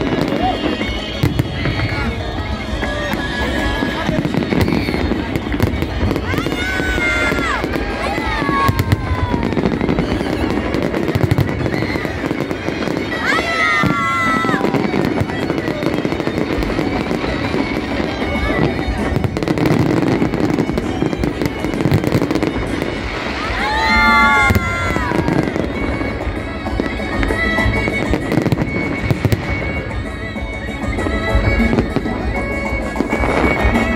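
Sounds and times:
fireworks bangs and crackles: 0:00.0 - 0:33.9.

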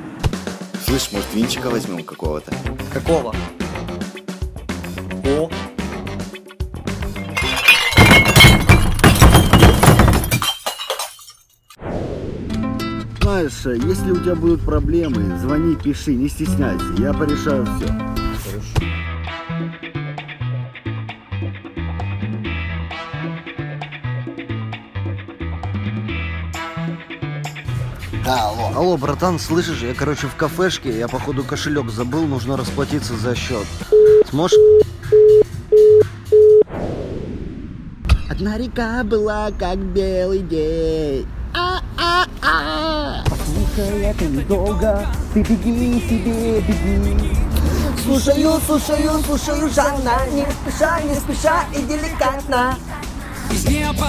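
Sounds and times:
glass bottles shattering: 0:07.0 - 0:11.8
telephone busy tone beeps: 0:33.9 - 0:36.7.

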